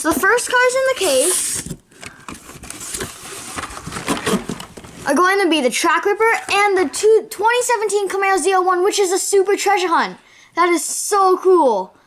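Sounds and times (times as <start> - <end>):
cardboard and plastic rustling: 0.1 - 5.2.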